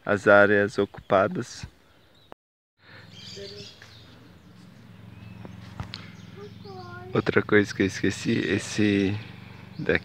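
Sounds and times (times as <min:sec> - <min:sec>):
birds chirping and whistling: 0:00.7 - 0:10.0.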